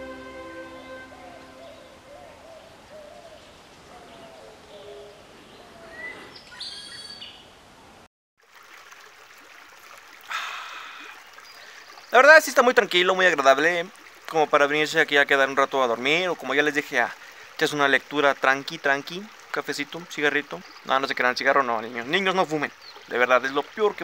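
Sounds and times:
birds calling: 0:00.9 - 0:07.5
soft steady hiss: 0:07.3 - 0:24.0.

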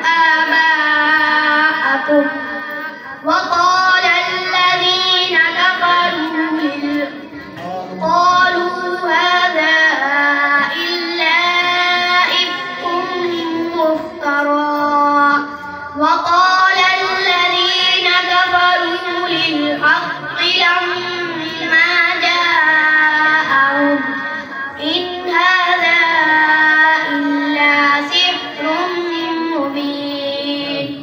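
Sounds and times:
boy reciting melodically: 0:00.0 - 0:31.0.

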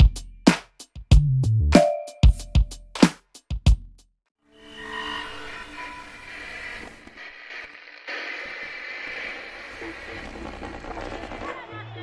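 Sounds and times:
static hiss: 0:06.3 - 0:11.5.

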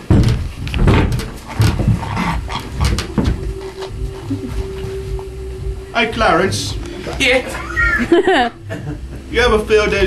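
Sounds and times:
metal chairs knocking and scraping: 0:00.0 - 0:04.9.

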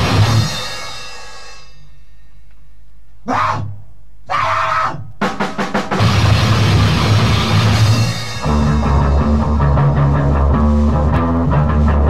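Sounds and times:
distorted band noise and drums: 0:00.0 - 0:02.3, 0:03.3 - 0:12.0.

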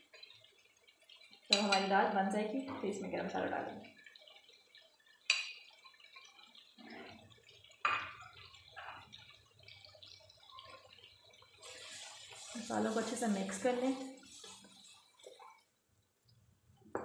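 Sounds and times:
food sizzling in hot oil: 0:00.0 - 0:15.8
sharp pops of oil: 0:05.3 - 0:05.7.

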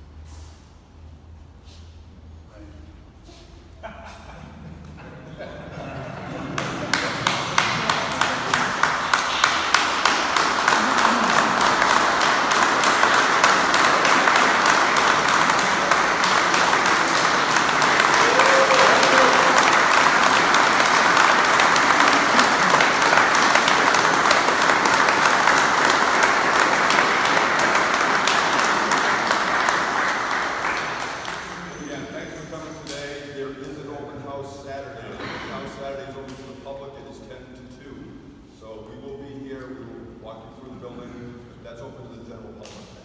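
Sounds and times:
crowd applauding: 0:05.8 - 0:33.0
sharp nearby hand claps: 0:06.6 - 0:31.7.

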